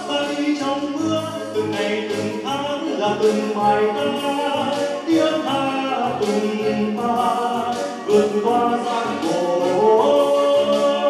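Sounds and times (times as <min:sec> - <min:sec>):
man singing into a microphone: 0:00.0 - 0:11.0
pulsing bass line: 0:00.0 - 0:11.0
recorded backing track: 0:00.0 - 0:11.0.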